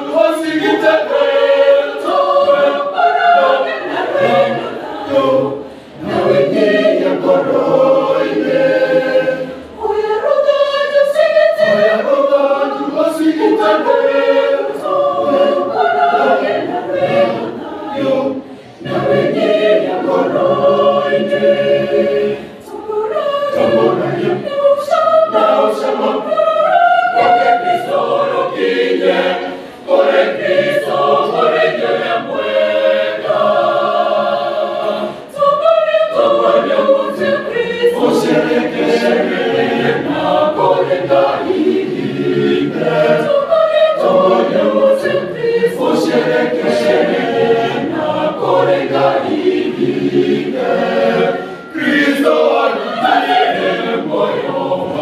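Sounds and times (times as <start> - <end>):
choir singing unaccompanied: 0.0 - 55.0.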